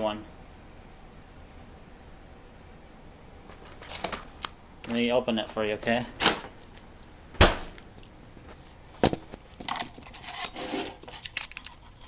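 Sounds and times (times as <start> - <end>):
loud thump: 7.4 - 7.8.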